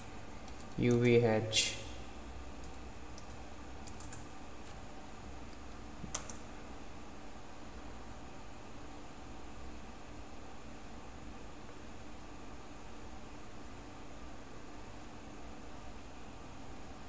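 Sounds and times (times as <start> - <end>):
faint steady hum: 0.0 - 17.0
keyboard keystrokes: 2.6 - 4.8, 5.5 - 6.4.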